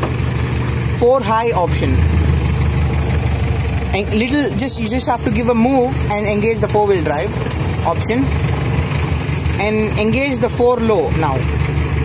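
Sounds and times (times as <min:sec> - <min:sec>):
car engine idling: 0:00.0 - 0:12.0.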